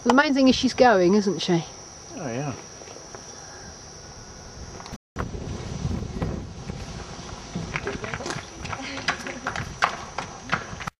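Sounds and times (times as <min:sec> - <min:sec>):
wind noise on microphone: 0:03.7 - 0:10.9
horse hooves on concrete: 0:06.2 - 0:10.9.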